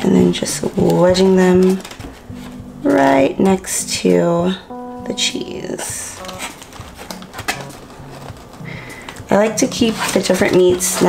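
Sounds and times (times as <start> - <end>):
paper clicks and rustles: 0.0 - 3.6, 6.2 - 11.0
faint background music: 0.0 - 11.0.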